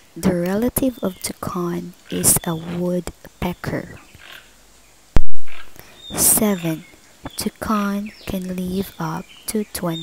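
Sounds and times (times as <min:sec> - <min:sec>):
faint background sound: 0:00.0 - 0:10.0.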